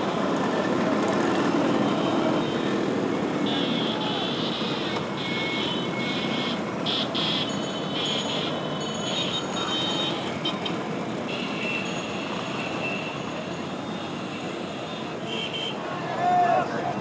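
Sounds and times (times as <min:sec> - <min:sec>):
scooters and motorcycles running: 0:00.0 - 0:17.0
people's voices: 0:15.8 - 0:17.0.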